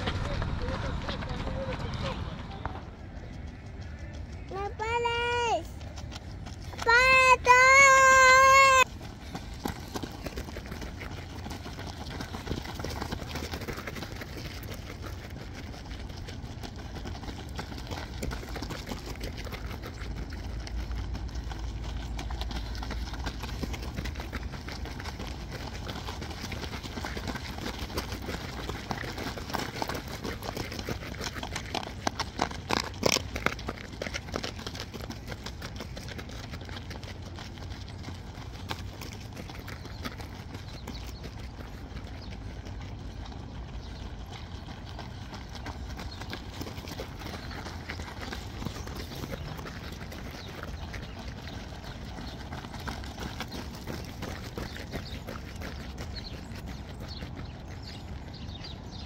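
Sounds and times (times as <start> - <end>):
low rumble: 0.0 - 4.5
running footsteps on gravel: 0.0 - 59.0.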